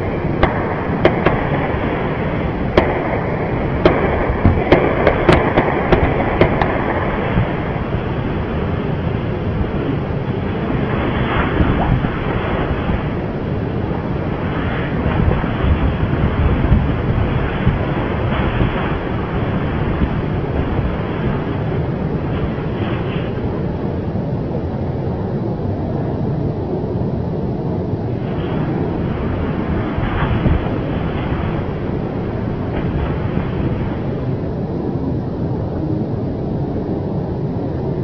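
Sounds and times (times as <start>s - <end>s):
steady rumbling noise: 0.0s - 38.0s.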